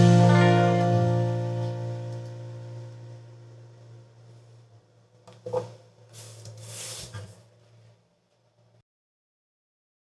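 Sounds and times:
rubbing brushing sound: 5.5 - 7.8.

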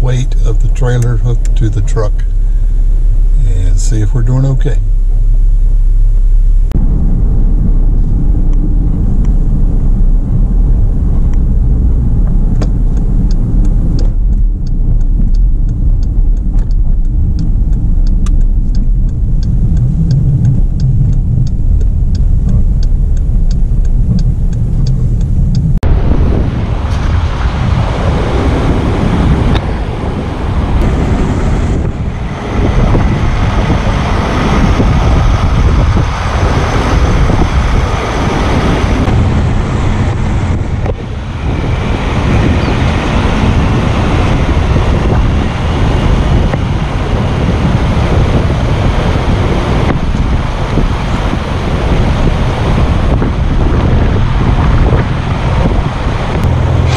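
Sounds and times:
turn signal ticking: 0.0 - 25.8, 30.4 - 56.9
car engine and road noise: 0.0 - 56.9
wind on microphone: 0.0 - 56.9.

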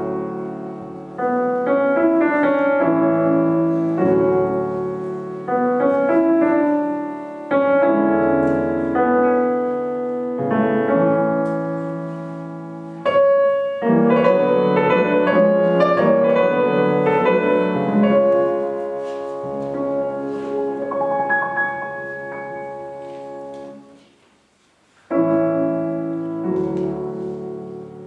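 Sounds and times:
grand piano playing: 0.0 - 24.1, 25.1 - 28.0.

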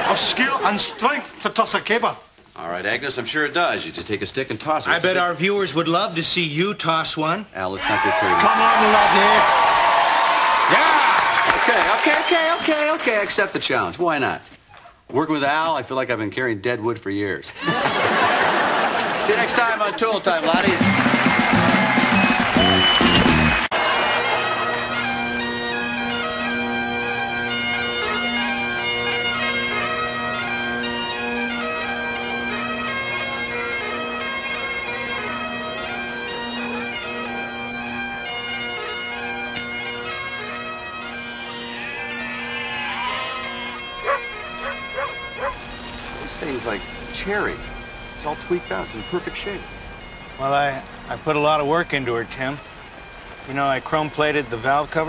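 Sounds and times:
bagpipes playing a tune: 20.6 - 55.0
dog yipping: 44.0 - 45.6.

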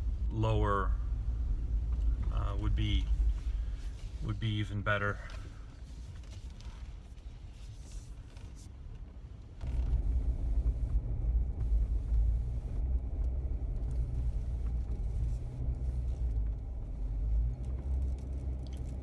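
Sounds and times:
vehicle rumbling on dirt trail: 0.0 - 6.8, 9.6 - 19.0.

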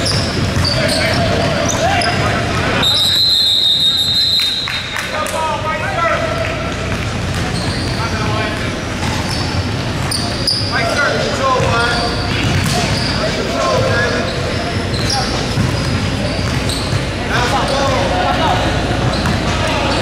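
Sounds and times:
basketball bouncing on wooden floor: 15.0 - 17.0.

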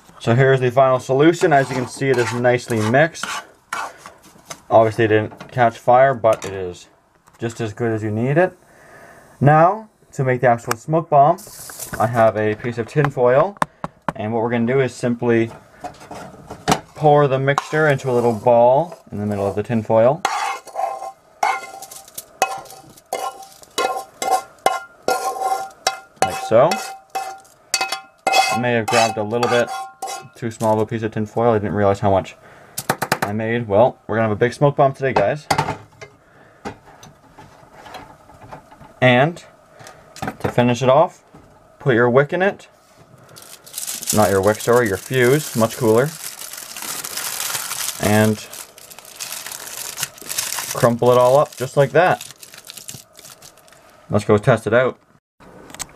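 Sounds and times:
spoon scraping a saucepan: 1.4 - 4.1, 20.2 - 30.4
tin foil crinkling: 20.7 - 25.8, 27.1 - 27.6, 43.3 - 54.0.

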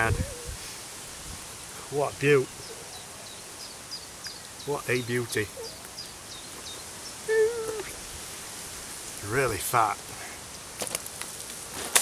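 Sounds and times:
short pitched call: 7.2 - 8.0.

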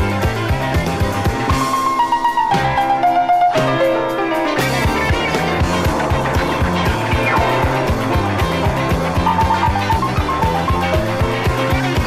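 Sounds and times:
rock and roll band playing: 0.0 - 12.0
piano chords: 3.9 - 10.9.

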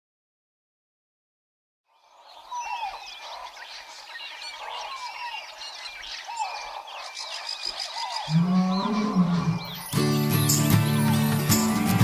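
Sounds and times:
birds chirping and calling: 1.9 - 12.0.

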